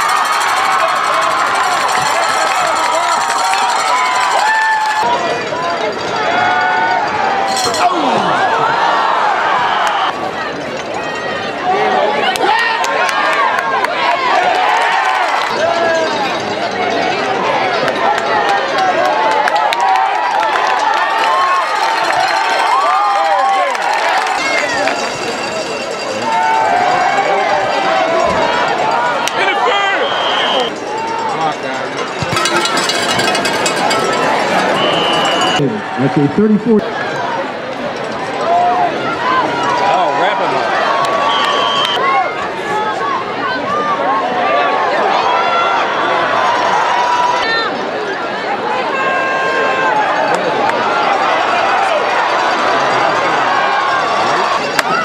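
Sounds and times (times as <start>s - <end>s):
crowd cheering and shouting: 0.0s - 55.0s.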